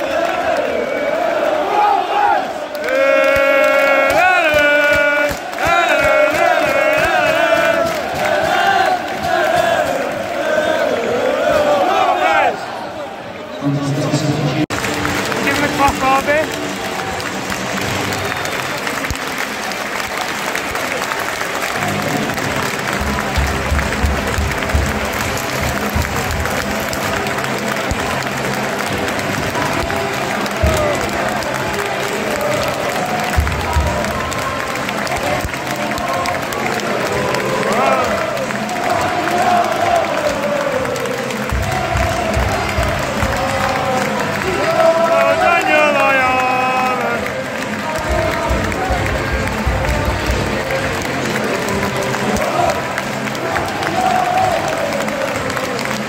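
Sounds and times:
crowd clapping: 0.0 - 13.0, 14.0 - 56.0
crowd chatter: 0.0 - 56.0
music over loudspeakers: 21.7 - 56.0.

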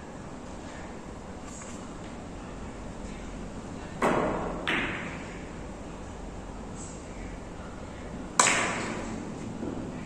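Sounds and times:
cue striking billiard ball: 4.0 - 5.2.

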